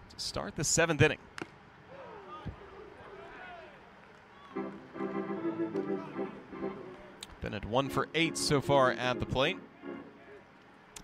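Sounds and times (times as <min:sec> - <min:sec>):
faint background sound: 0:00.4 - 0:11.0
organ chords: 0:04.6 - 0:10.4.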